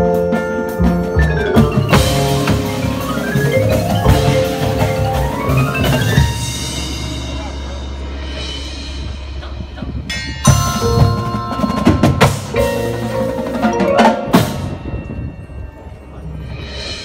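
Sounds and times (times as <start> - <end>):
marimbas and vibraphones ringing: 0.0 - 17.0
drum hits: 0.9 - 8.7, 9.8 - 14.8.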